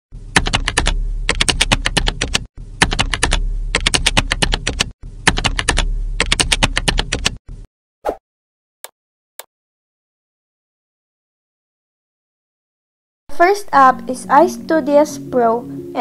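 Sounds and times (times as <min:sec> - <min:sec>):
steady low hum: 0:00.2 - 0:07.7
rapid keyboard typing: 0:00.4 - 0:07.4.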